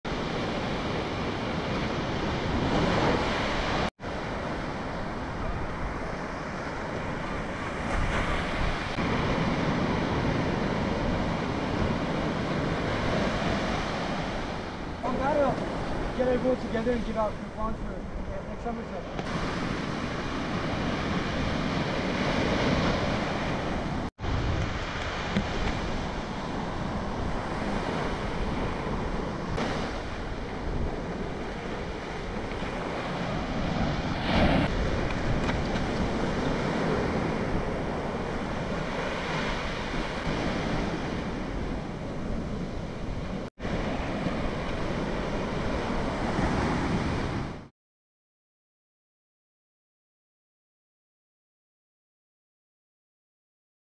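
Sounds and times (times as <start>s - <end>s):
ocean surf breaking: 0.1s - 47.7s
wind noise on microphone: 19.2s - 47.7s.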